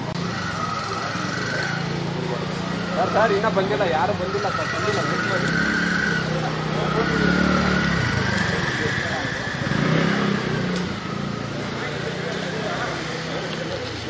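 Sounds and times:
people's voices: 0:00.0 - 0:14.0.

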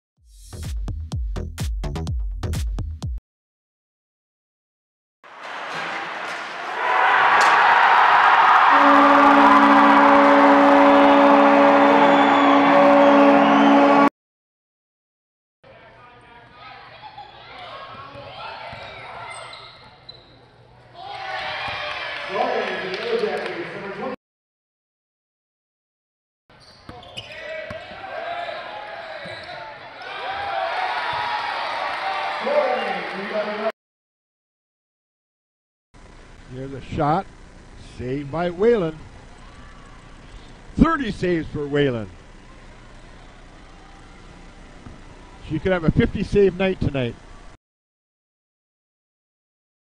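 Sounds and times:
crowd cheering: 0:05.3 - 0:14.1, 0:20.9 - 0:24.2, 0:27.4 - 0:33.7
loud shout: 0:06.6 - 0:13.8, 0:21.0 - 0:23.1, 0:27.4 - 0:33.7
goal horn blast: 0:08.3 - 0:14.1
crowd and player voices: 0:15.7 - 0:24.2, 0:39.0 - 0:45.6.

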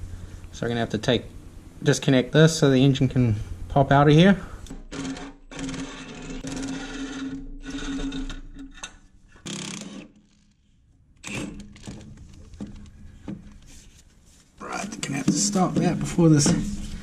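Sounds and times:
impact wrench running on bolts: 0:04.7 - 0:08.4, 0:09.4 - 0:10.3.

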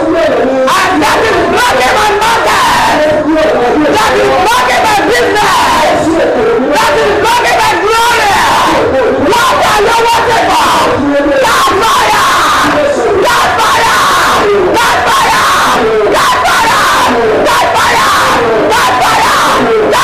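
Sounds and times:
congregation praying aloud: 0:00.0 - 0:20.0
preacher praying into microphone: 0:00.0 - 0:20.0.

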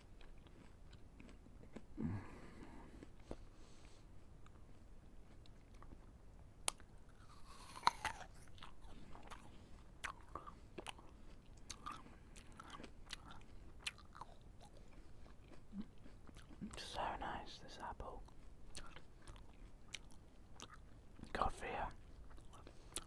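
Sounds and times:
moist crackling chewing: 0:00.0 - 0:23.0
apple crunching bites: 0:06.6 - 0:16.8, 0:18.2 - 0:21.4.

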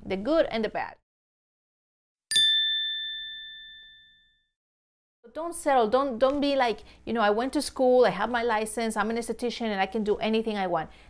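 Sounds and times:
bell-like chime ding: 0:02.3 - 0:04.6.

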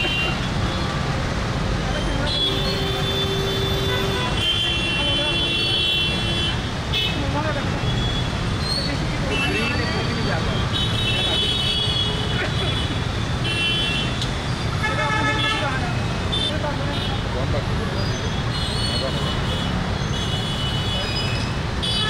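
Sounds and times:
traffic engines rumbling: 0:00.0 - 0:22.0
vehicle horns honking: 0:02.0 - 0:08.4, 0:09.3 - 0:17.3, 0:18.4 - 0:22.0.

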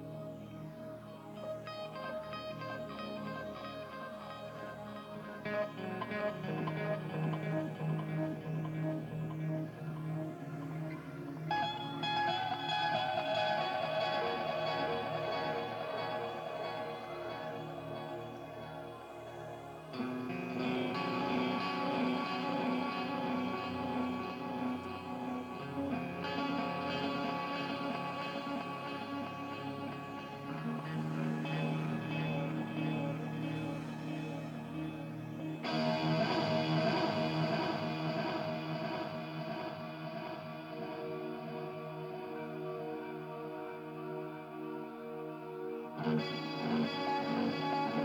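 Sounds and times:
sustained guitar and keyboard chords: 0:00.0 - 0:48.0.

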